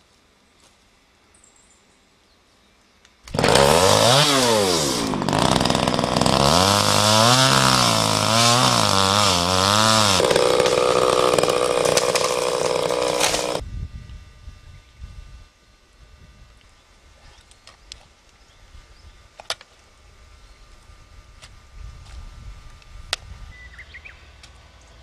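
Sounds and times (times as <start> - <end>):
chainsaw cutting wood: 3.2 - 13.6.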